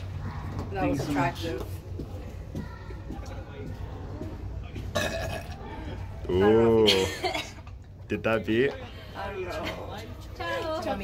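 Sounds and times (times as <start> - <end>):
person burping: 4.9 - 5.7.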